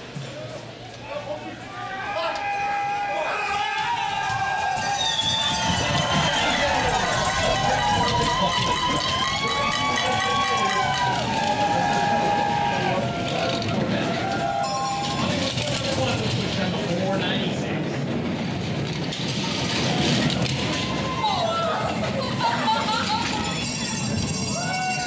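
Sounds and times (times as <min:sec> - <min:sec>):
spectators cheering: 0:00.2 - 0:16.0, 0:19.3 - 0:25.0
sled runners rumbling on ice: 0:03.4 - 0:25.0.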